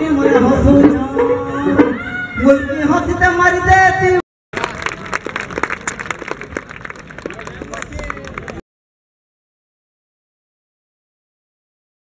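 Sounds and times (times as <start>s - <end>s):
audience clapping: 4.5s - 8.6s
crowd noise: 4.5s - 8.6s.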